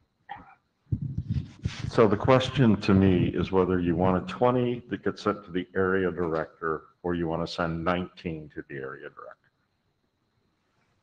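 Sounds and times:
man speaking into a microphone: 1.4s - 9.3s.

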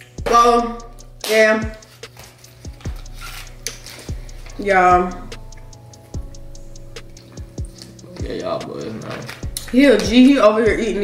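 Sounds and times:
held chord tones: 0.0s - 11.0s
hi-hat ticks: 0.0s - 11.0s
deep kick drum: 4.2s - 5.6s, 9.4s - 11.0s.

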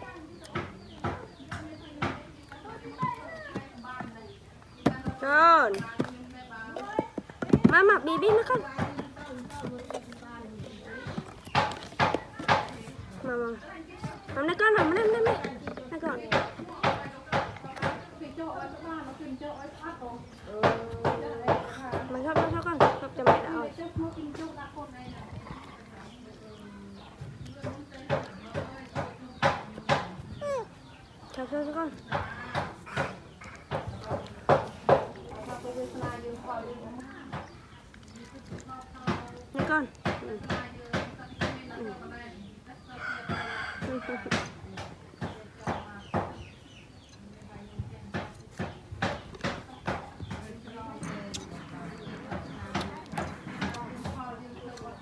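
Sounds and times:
baby monkey sucking milk bottle: 7.8s - 42.4s, 44.0s - 55.0s.

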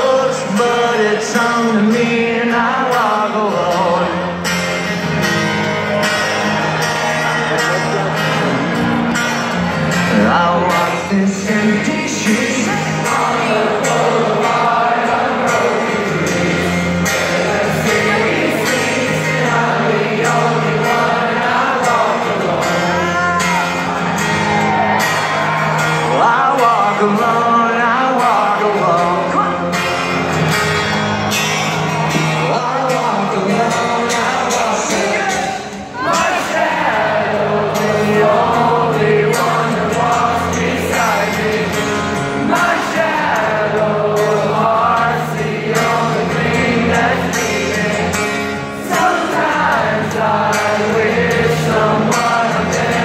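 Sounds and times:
electric guitars: 0.0s - 53.0s
live rock band playing: 0.0s - 53.0s
person singing: 10.0s - 29.9s, 32.2s - 53.0s.

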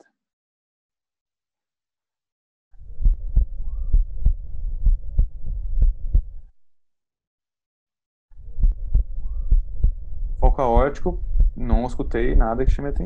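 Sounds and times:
heartbeat through stethoscope: 2.8s - 6.5s, 8.4s - 13.0s.

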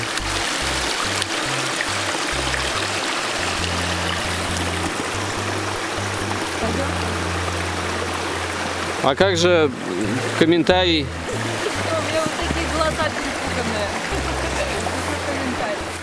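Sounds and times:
background music with bass line: 0.0s - 16.0s
stream running over stones: 0.0s - 16.0s.

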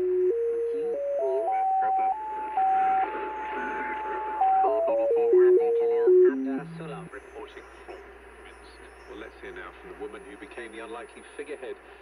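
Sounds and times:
radio whistle tone: 0.0s - 7.9s
faint broadcast speech: 0.0s - 12.0s.

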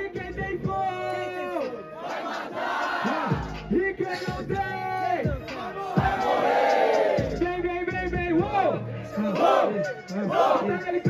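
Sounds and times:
crowd shouting together: 1.3s - 3.6s, 4.9s - 7.4s, 8.5s - 10.7s.

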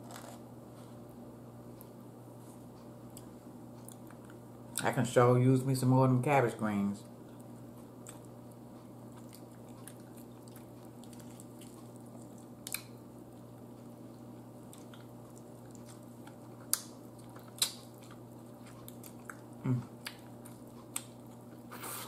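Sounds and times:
steady low hum: 0.0s - 22.0s
person chewing: 7.2s - 22.0s.

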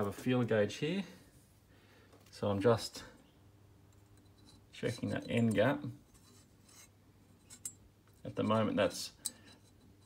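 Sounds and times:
faint metal handling: 3.8s - 10.0s.

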